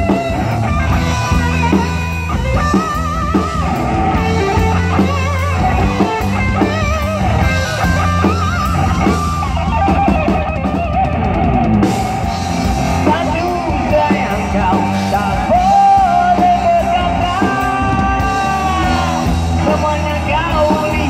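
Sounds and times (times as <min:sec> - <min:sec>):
electric guitar vibrato notes: 0:00.0 - 0:21.0
rock band playing instrumental: 0:00.0 - 0:21.0.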